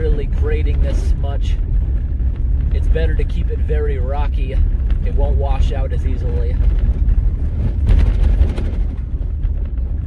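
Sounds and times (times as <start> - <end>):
tyres rumbling on gravel: 0.0 - 10.0.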